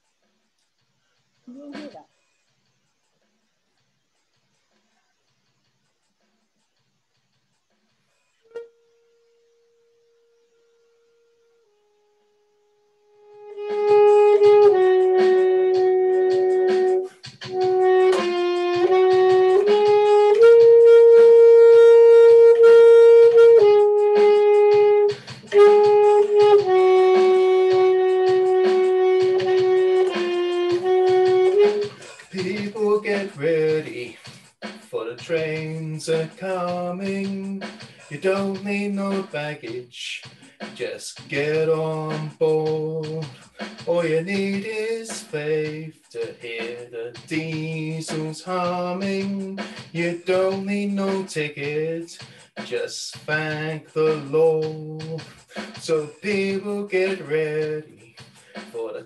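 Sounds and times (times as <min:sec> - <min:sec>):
saxophone slow melody: 0:08.4 - 0:33.9.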